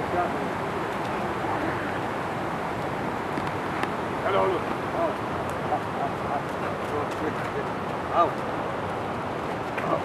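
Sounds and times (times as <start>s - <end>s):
steady rushing background noise: 0.0s - 10.0s.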